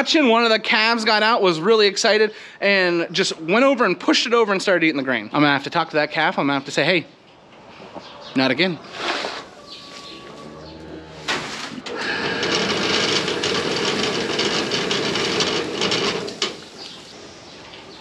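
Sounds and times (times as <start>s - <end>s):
feed pouring into wheelbarrow: 11.3s - 17.1s.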